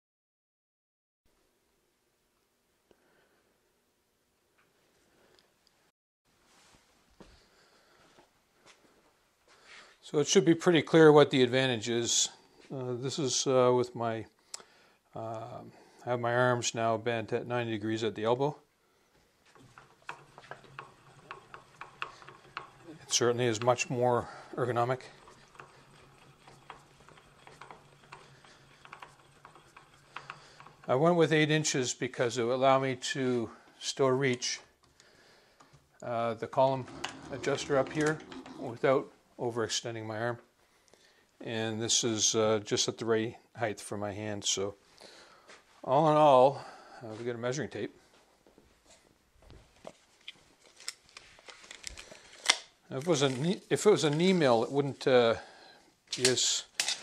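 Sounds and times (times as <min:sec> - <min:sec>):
handwheel ticking: 0:19.6 - 0:31.0.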